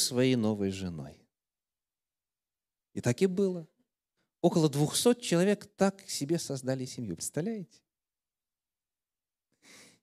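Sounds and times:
faint in-breath into microphone: 9.6 - 10.0.

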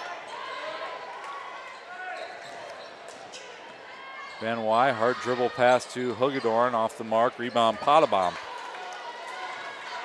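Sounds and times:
faint voices in a hall: 0.0 - 10.0.

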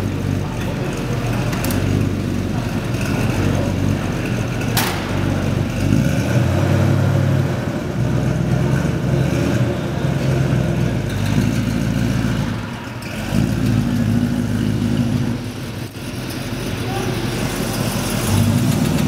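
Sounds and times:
car engine idling with throttle blips: 0.0 - 19.0.

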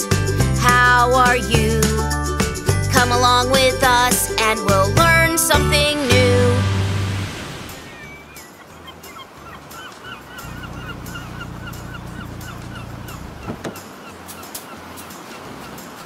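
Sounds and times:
low engine-like hum: 7.5 - 15.9
bird calling in curved notes: 7.7 - 16.0.

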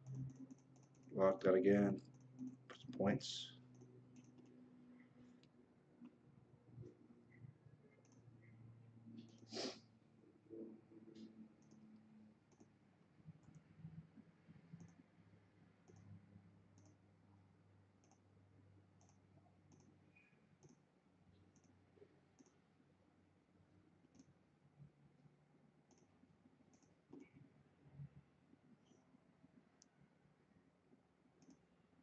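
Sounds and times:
low room hum: 0.0 - 32.0.

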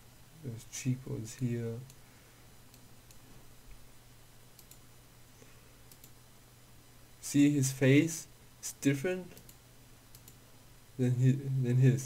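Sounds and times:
low steady hum: 0.0 - 12.0
computer mouse clicks: 2.7 - 3.2, 4.6 - 4.9, 5.9 - 6.2, 9.3 - 10.4.

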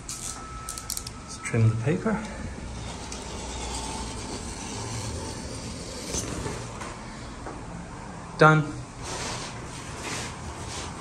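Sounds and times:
wallpaper rubbing across machine: 2.5 - 7.2, 9.0 - 11.0
scrape: 2.8 - 6.7, 9.0 - 11.0.

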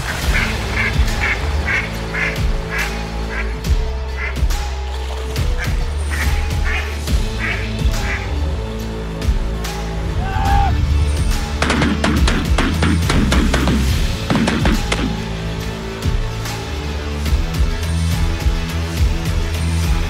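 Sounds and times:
intro music with steady bass: 0.0 - 20.0
duck quacks: 0.1 - 3.6, 4.2 - 4.4, 5.6 - 8.3.

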